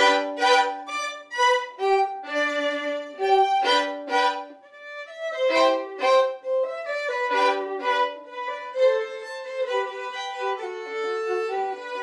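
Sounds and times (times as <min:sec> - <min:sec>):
violin duet: 0:00.0 - 0:12.0.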